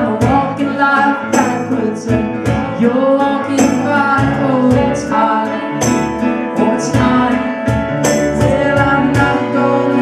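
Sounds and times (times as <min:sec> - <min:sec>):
piano chords: 0:00.0 - 0:10.0.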